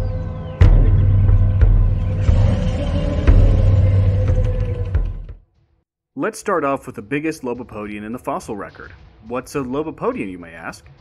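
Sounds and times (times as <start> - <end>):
deep bass rumble: 0.0 - 5.4.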